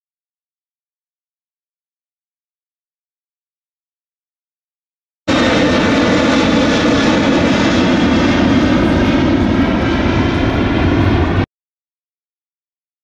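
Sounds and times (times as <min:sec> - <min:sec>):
jet engines roaring overhead: 0:05.3 - 0:11.5.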